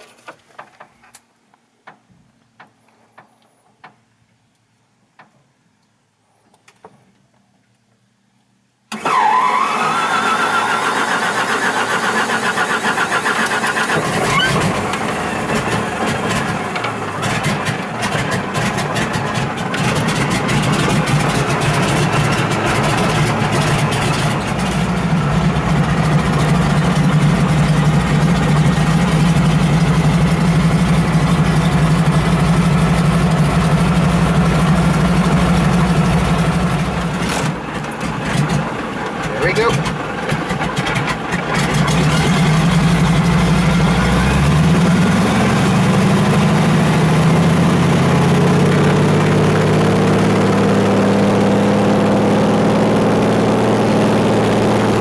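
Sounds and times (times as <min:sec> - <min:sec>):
radial aircraft engine starting: 0:08.9 - 0:55.0.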